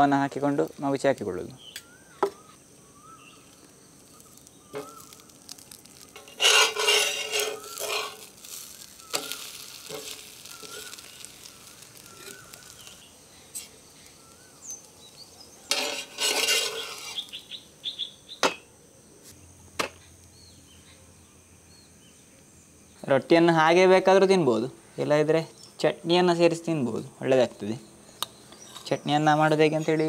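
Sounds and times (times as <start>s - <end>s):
sizzling: 0.0s - 20.8s
faint bird chirps: 1.4s - 6.2s, 7.4s - 15.8s, 16.6s - 23.1s
spatula scraping: 4.3s - 13.8s, 15.6s - 17.4s.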